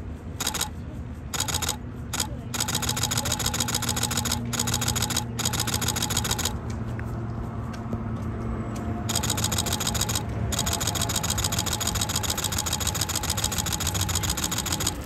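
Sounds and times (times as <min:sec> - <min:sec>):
low hum of traffic: 0:00.0 - 0:15.0
camera shutter clicking: 0:00.4 - 0:00.7, 0:01.4 - 0:06.6, 0:09.1 - 0:15.0.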